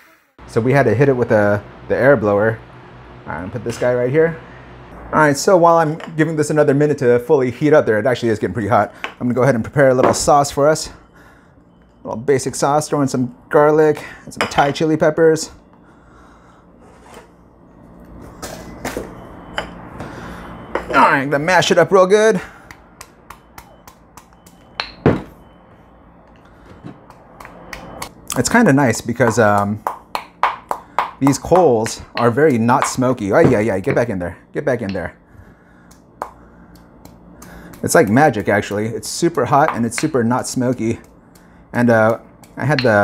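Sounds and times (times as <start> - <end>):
pestle grinding in mortar: 35.9 - 43.0.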